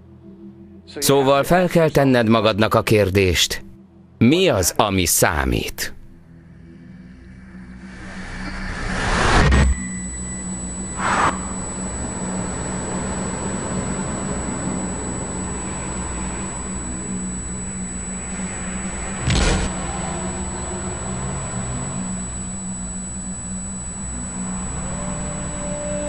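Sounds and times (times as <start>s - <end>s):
low hum: 6.0s - 26.0s.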